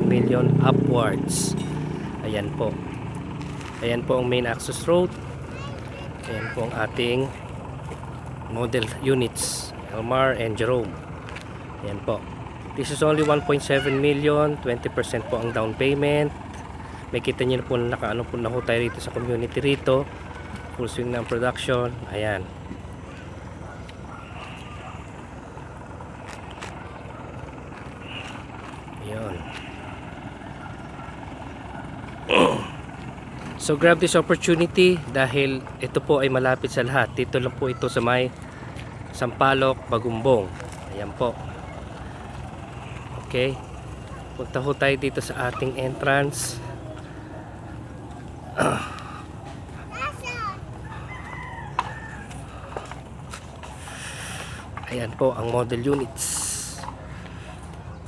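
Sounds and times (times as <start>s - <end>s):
low outdoor rumble: 0.0s - 58.0s
rooster crowing: 50.7s - 52.8s.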